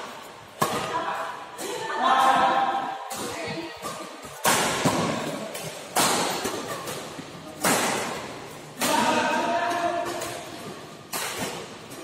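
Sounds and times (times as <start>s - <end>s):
rackets hitting shuttlecock: 0.0s - 12.0s.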